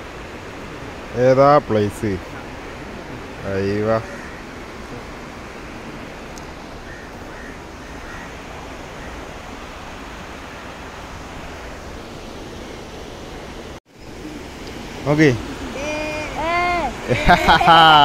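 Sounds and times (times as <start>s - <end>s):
river flowing over rapids: 0.0s - 18.0s.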